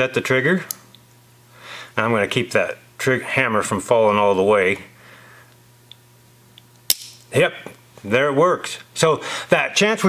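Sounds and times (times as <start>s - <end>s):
trigger metallic click: 6.9s - 7.2s.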